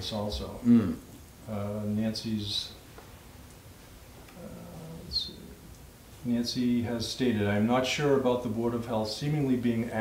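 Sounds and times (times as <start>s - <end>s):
soft s hiss: 0.0s - 10.0s
man murmuring: 0.5s - 1.1s.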